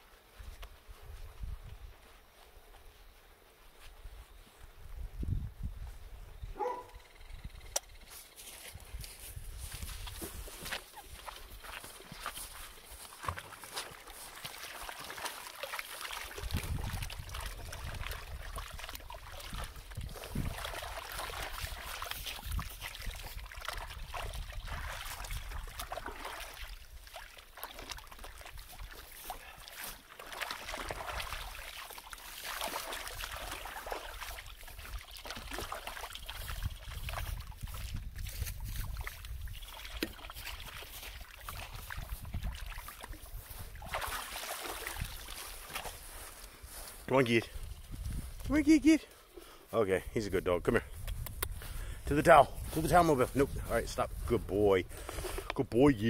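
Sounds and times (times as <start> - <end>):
water sloshing in a plastic tub: 8.4 - 48.6.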